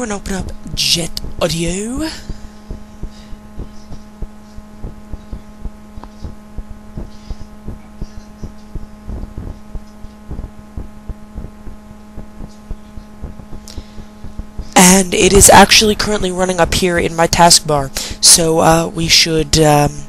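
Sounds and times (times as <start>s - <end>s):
electrical hum: 0.0s - 20.0s
low thumps: 0.4s - 14.8s.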